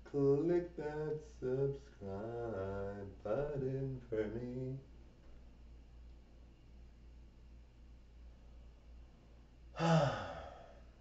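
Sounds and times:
person sighing: 9.8 - 10.9.

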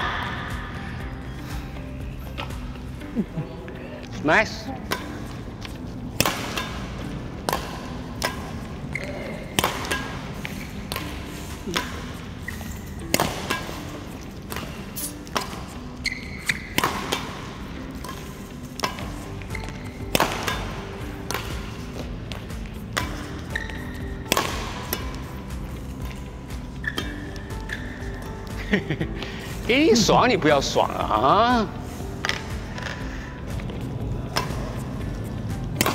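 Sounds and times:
background music: 0.0 - 35.9
racket hitting shuttlecock: 4.8 - 29.7, 32.1 - 35.9.

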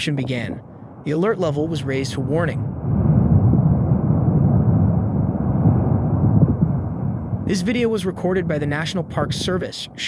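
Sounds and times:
lava low rumble: 0.0 - 10.0.

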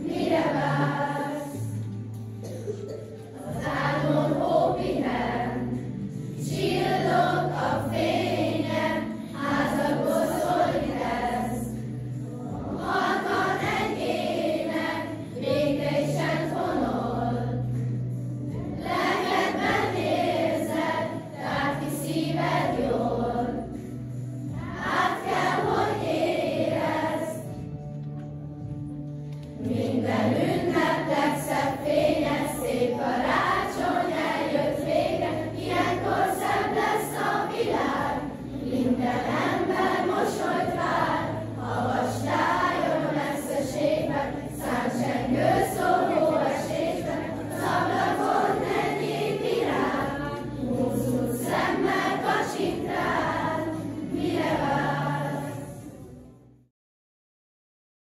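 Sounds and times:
children's choir singing: 0.0 - 27.8, 29.5 - 56.0.

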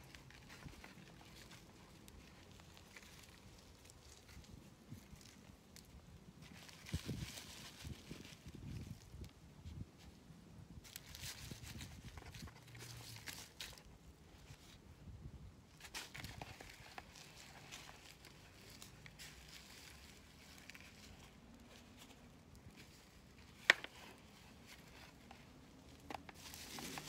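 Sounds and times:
hands rustling in soil: 0.0 - 27.0.

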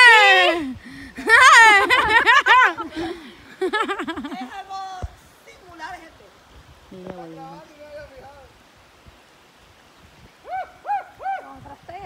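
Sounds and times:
short high hooting calls: 10.4 - 11.5.

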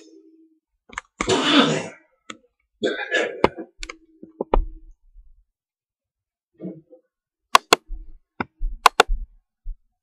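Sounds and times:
breathy cough-like vocal burst: 1.3 - 2.1, 2.8 - 3.7.

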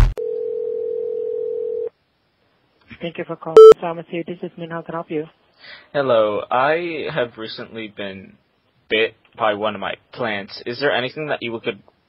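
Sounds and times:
telephone ringing tone: 0.2 - 1.9.

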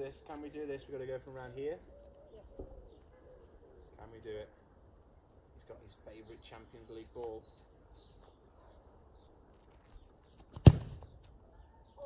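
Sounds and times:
football kicked hard: 10.5 - 11.1.

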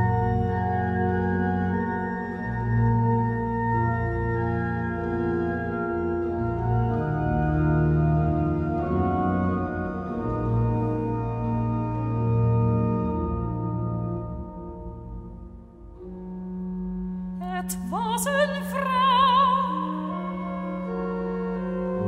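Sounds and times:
pipe organ chords: 0.0 - 17.4, 19.7 - 22.0.

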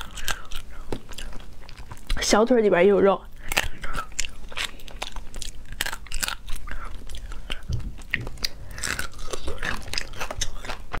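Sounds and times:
chewing: 0.0 - 2.3, 3.3 - 11.0
crayfish shell cracking: 3.4 - 11.0.

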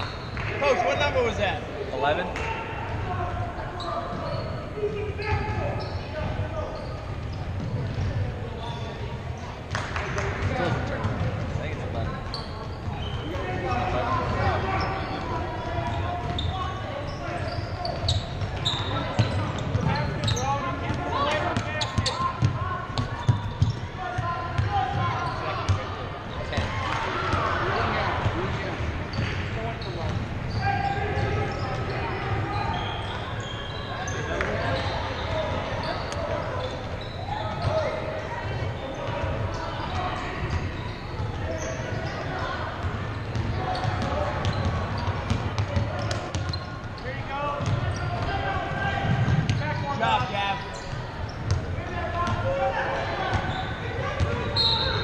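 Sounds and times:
indistinct shouting and chatter: 0.0 - 55.0.

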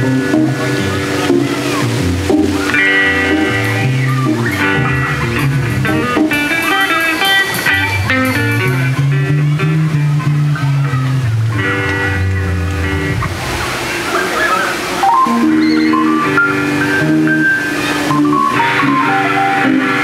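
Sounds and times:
live blues-rock band: 0.0 - 14.4, 15.0 - 20.0.

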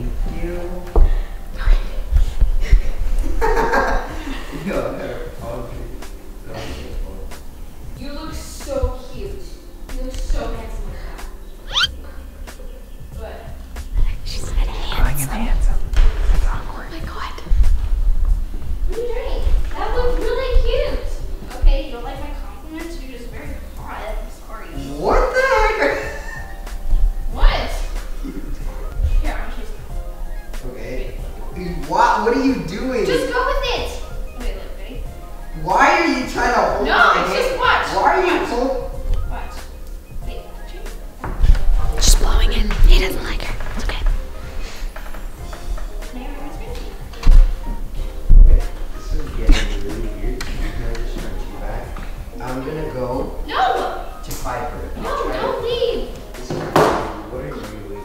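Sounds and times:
background music: 0.0 - 58.0
quiet talk: 8.2 - 17.5, 48.2 - 58.0
whispering: 14.0 - 17.5, 41.9 - 44.2.

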